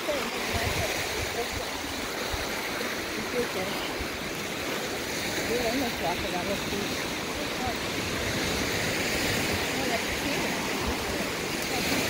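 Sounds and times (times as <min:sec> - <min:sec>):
waves washing onto sand: 0:00.0 - 0:12.0
wind buffeting microphone: 0:00.0 - 0:12.0.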